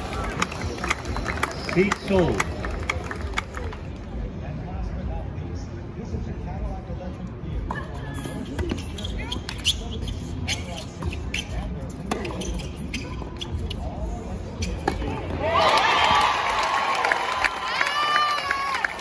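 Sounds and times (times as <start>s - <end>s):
tennis ball bouncing: 12.1s - 13.5s
crowd cheering and shouting: 15.4s - 19.0s.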